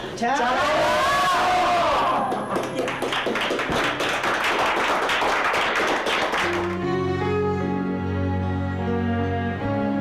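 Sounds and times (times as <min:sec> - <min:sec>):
people clapping: 0:01.4 - 0:07.0.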